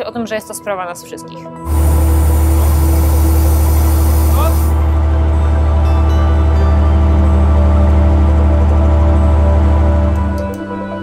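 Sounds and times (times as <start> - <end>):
background music: 0.0 - 11.0
high hiss: 1.7 - 4.9
ship machinery drone: 1.7 - 10.5.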